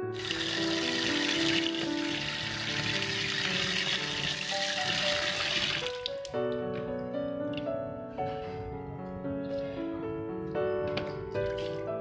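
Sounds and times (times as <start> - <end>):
piano music: 0.0 - 12.0
water pouring into plastic bucket: 0.1 - 6.4, 11.4 - 11.9.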